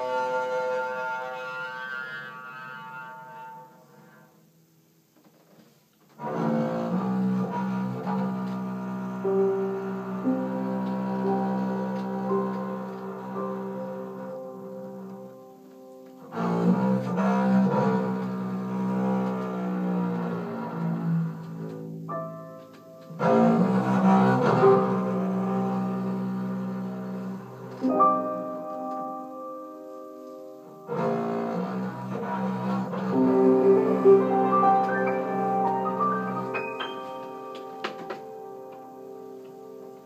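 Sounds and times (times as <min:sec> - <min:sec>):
piano: 0:00.0 - 0:40.0
bowed double bass note: 0:30.8 - 0:37.6.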